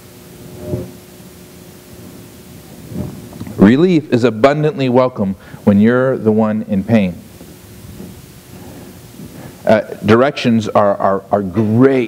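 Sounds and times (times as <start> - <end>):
background hiss and room rumble: 0.0 - 12.0
man speaking: 3.6 - 7.3, 9.6 - 12.0.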